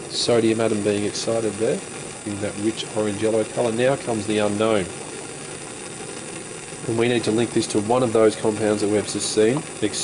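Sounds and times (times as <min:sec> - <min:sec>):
burner flame burning: 0:00.0 - 0:10.0.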